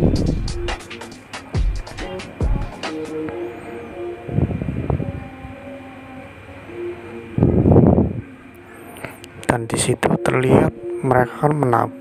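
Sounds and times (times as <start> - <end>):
music with sustained notes: 0.0 - 12.0
noisy surges: 0.0 - 12.0.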